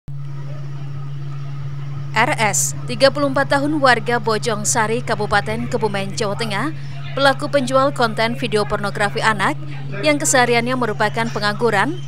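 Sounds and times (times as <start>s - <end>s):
low hum: 0.1s - 12.0s.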